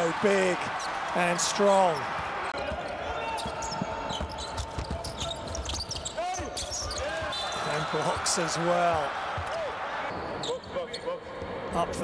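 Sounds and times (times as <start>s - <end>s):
sneakers squeaking: 2.6s - 7.7s.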